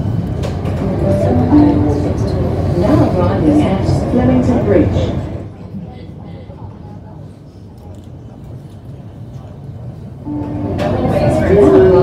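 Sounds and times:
train rumbling on track: 0:00.0 - 0:12.0.

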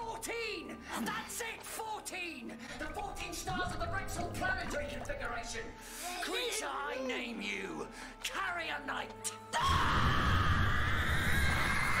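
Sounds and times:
creature screaming: 0:09.6 - 0:12.0.

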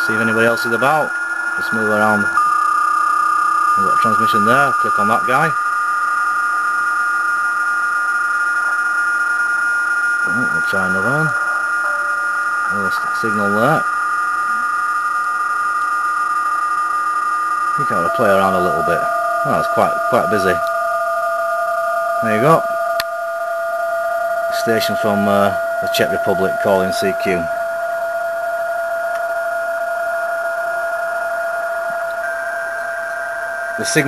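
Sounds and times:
digital radio signal tones: 0:00.0 - 0:06.3, 0:08.4 - 0:23.0, 0:24.4 - 0:28.1, 0:30.4 - 0:34.0
radio band hiss: 0:10.2 - 0:13.9, 0:17.8 - 0:20.6.

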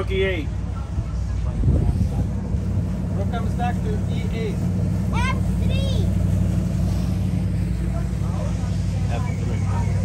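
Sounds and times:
faint voices: 0:00.0 - 0:10.0
low engine hum: 0:00.0 - 0:10.0.

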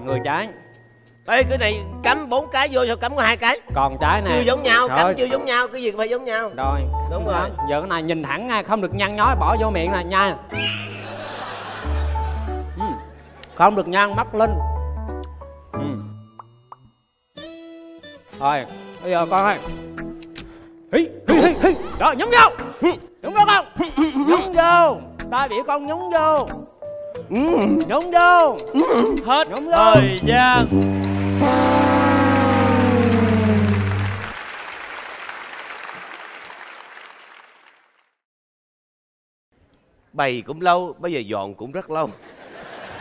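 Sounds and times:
held note of background music: 0:29.8 - 0:34.4
electronic tone sliding down: 0:30.0 - 0:34.3
applause: 0:32.2 - 0:38.2.

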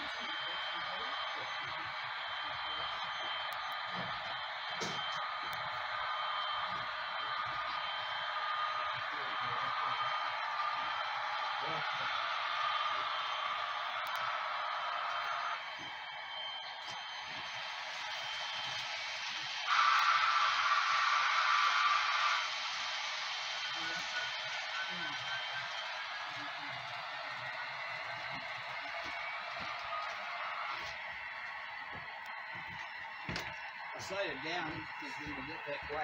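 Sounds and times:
model train wheels on rails: 0:00.0 - 0:36.0.

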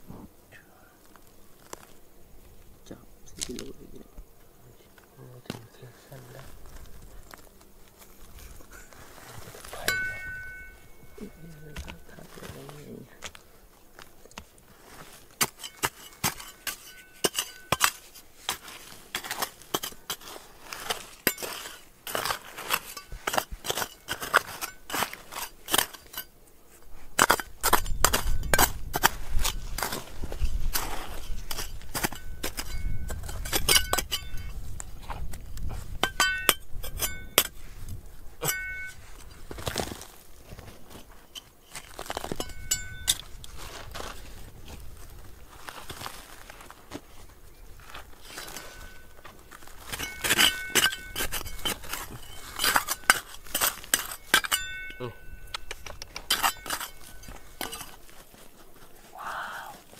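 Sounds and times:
trowel striking rock: 0:09.7 - 0:13.4, 0:14.3 - 0:26.4, 0:27.2 - 0:34.5, 0:35.9 - 0:37.6, 0:38.4 - 0:43.3, 0:47.9 - 0:58.2
stones and gravel clicking: 0:55.4 - 0:58.8.

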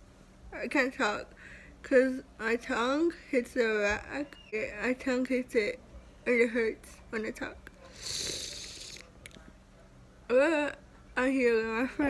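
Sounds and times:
breath hissing through mouth: 0:07.9 - 0:09.1.

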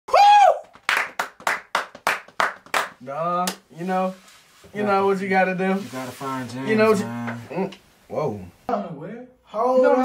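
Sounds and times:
hands clapping: 0:00.6 - 0:03.6.

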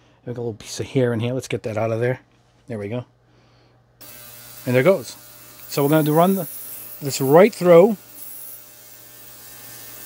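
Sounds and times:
ultrasonic cleaner humming: 0:04.0 - 0:10.0.

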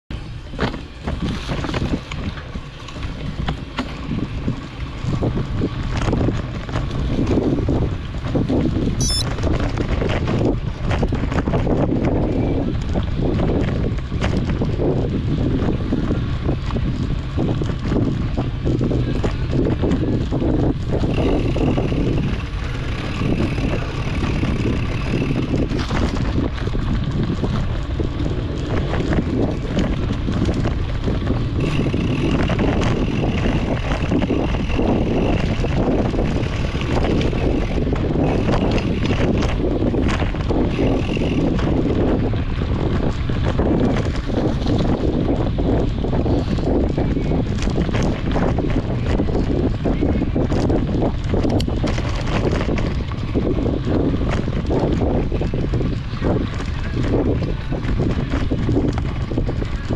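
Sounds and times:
bike rattling over dirt: 0:00.1 - 0:59.9
wind buffeting microphone: 0:00.1 - 0:59.9
thin high whir: 0:09.0 - 0:09.3.

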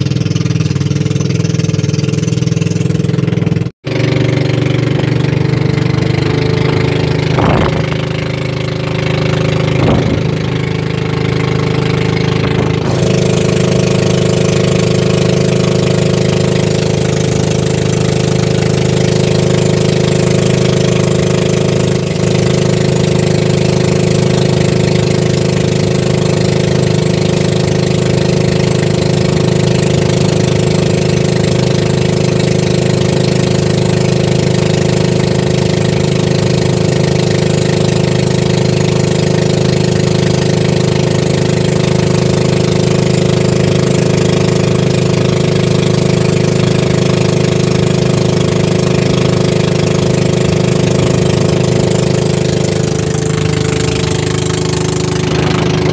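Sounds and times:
boat engine running: 0:00.0 - 0:55.9.

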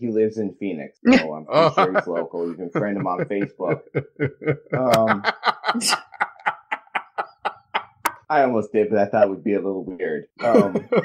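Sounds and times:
person laughing: 0:01.1 - 0:08.2, 0:10.4 - 0:11.0.

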